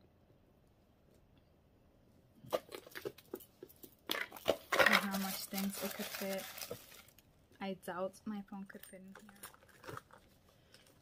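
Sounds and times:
rustling handling noise: 2.4s - 7.3s, 8.7s - 11.0s.

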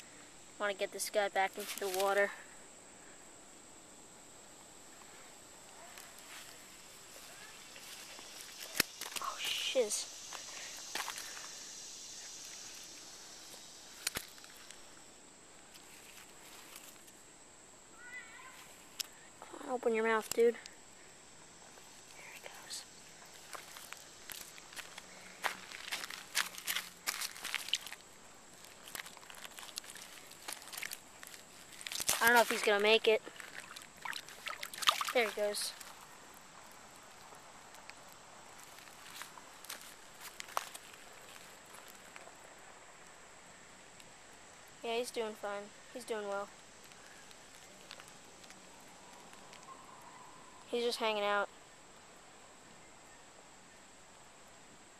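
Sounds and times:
faint background hiss: 0.0s - 54.9s
footsteps crunching on gravel: 10.3s - 11.5s, 23.3s - 36.0s, 38.6s - 42.1s.

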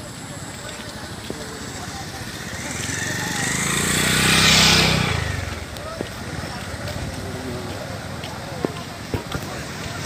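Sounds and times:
crowd murmur: 0.0s - 10.0s
motorcycle passing: 0.2s - 10.0s.

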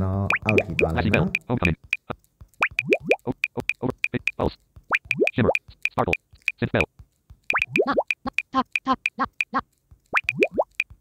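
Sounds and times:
short high ticks: 0.3s - 6.6s
rising plops: 2.6s - 3.8s, 4.9s - 5.6s, 7.5s - 8.4s, 10.1s - 10.8s.

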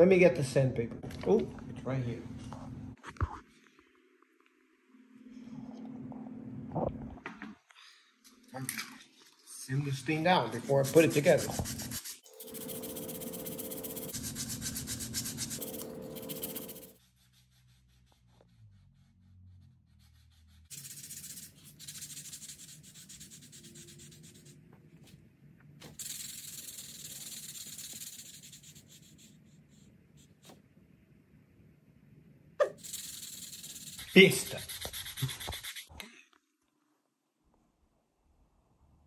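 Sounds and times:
sandpaper rasping on wood: 10.6s - 18.9s, 20.0s - 24.6s, 26.0s - 29.3s, 32.8s - 35.9s.

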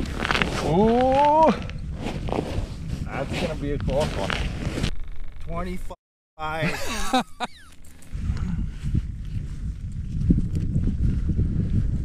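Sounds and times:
footsteps crunching in snow: 0.0s - 0.7s.

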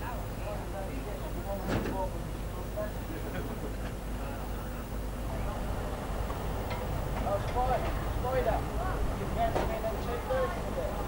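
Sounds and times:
distant people talking: 0.0s - 11.0s
low outdoor rumble: 0.0s - 11.0s.

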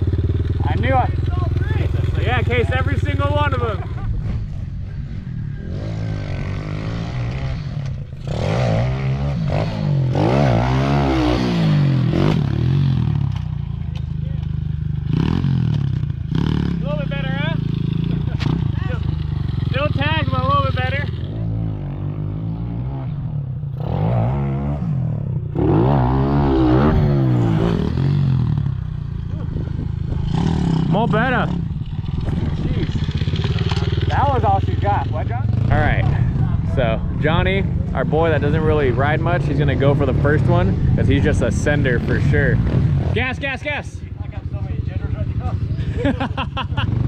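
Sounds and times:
pit bike engine revving: 0.0s - 47.0s.

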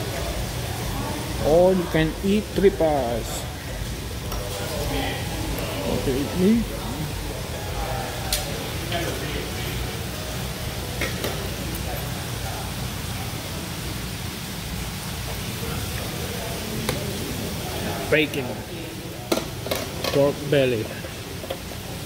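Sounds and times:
faint background chatter: 0.0s - 22.0s
steady room hum: 0.0s - 22.0s.

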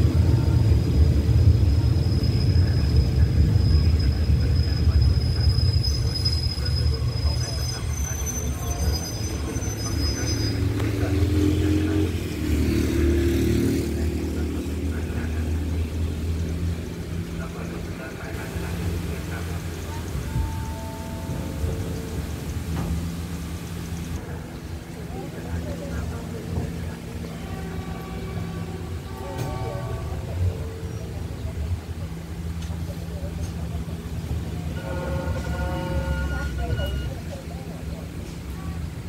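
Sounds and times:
people's voices: 0.0s - 39.0s.

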